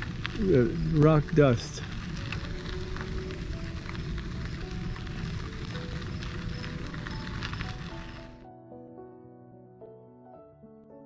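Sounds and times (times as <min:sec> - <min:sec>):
bicycle tyres crunching on grit: 0:00.0 - 0:08.4
soft piano-like music: 0:00.0 - 0:11.0.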